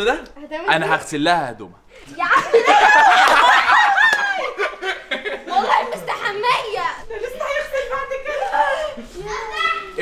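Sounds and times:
people laughing: 0:02.2 - 0:09.2.

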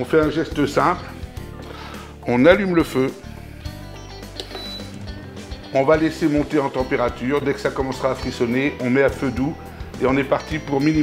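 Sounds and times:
background music: 0:00.0 - 0:11.0
hob control short high beep: 0:04.5 - 0:05.2.

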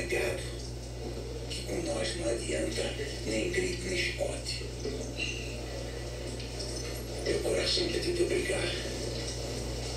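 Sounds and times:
film dialogue from television: 0:00.0 - 0:09.9
steady low hum: 0:00.0 - 0:09.9.

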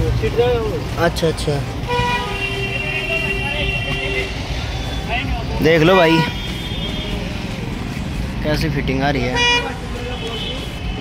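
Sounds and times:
low traffic rumble: 0:00.0 - 0:11.0.

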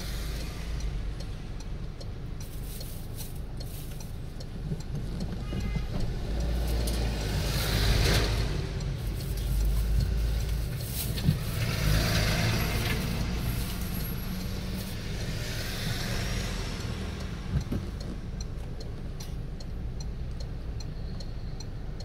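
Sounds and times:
vehicles passing close by: 0:00.0 - 0:22.0
car cabin rumble: 0:01.7 - 0:15.3, 0:17.1 - 0:20.7.

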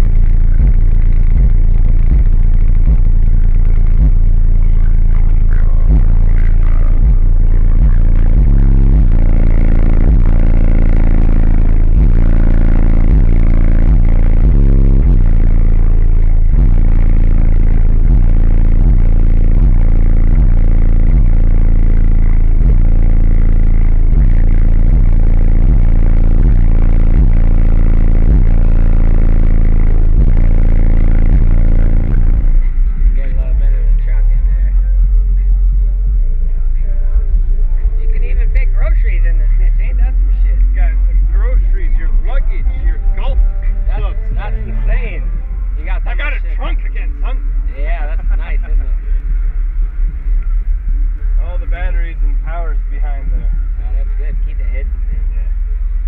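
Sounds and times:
distorted bass-heavy music: 0:00.0 - 0:56.0.

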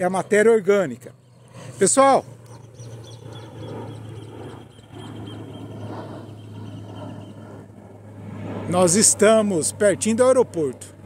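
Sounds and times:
aircraft flying overhead: 0:00.0 - 0:11.0.

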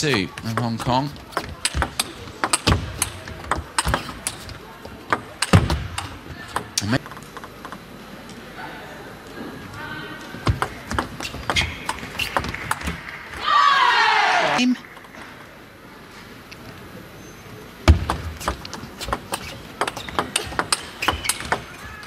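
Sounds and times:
table tennis ball clicking: 0:00.0 - 0:07.8, 0:18.0 - 0:21.9.

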